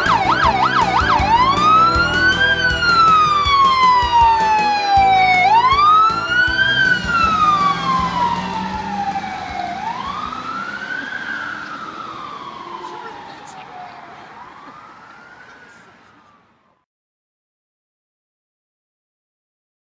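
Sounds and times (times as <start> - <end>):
police siren wailing: 0.0 - 16.8.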